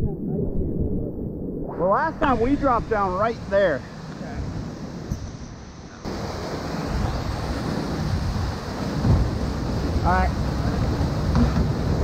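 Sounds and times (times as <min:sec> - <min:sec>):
low microphone rumble: 0:00.0 - 0:05.2
whitewater rushing: 0:06.1 - 0:12.0.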